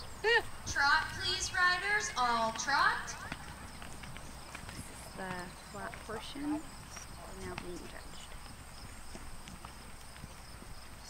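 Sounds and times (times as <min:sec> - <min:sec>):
horse hoofbeats on sand: 0:00.0 - 0:11.0.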